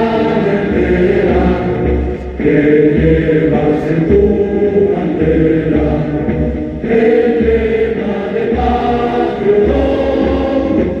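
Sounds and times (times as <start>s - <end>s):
group singing a hymn: 0.0s - 11.0s.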